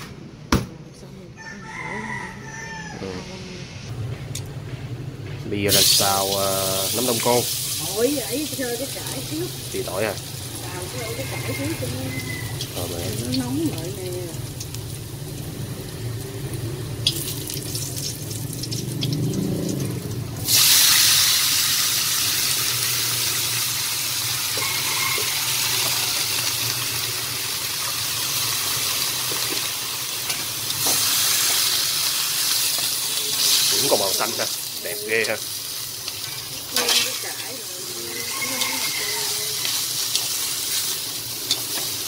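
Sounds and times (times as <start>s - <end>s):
chopsticks stir-frying: 5.7s - 42.0s
greens sizzling in a hot wok: 5.7s - 42.0s.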